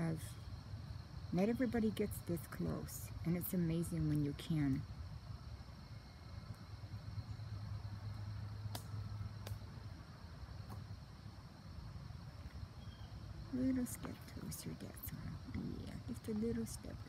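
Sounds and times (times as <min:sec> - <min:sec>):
small sharp clicks: 0:08.7 - 0:09.6.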